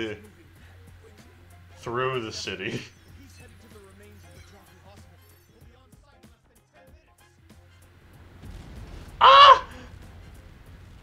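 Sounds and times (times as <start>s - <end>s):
harsh caw-like call: 9.2s - 9.9s.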